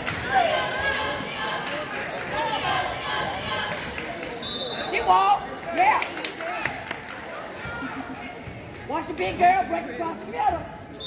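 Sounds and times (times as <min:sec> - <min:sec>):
spectators' voices: 0:00.0 - 0:11.0
whistle tone: 0:04.4 - 0:05.0.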